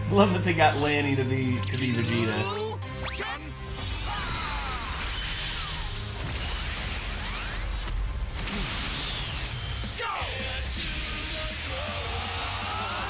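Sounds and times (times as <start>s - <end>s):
dramatic music score: 0.0s - 13.0s.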